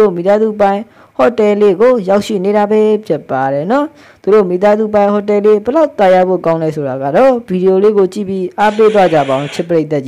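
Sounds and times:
person narrating: 8.5s - 9.8s.

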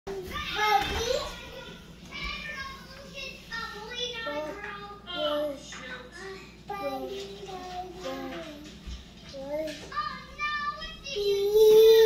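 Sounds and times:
toddlers babbling and calling out: 9.4s - 12.0s.

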